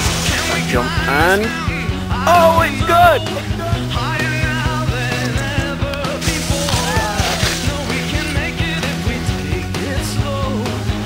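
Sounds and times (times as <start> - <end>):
rock music with drum beat: 0.0 - 11.0.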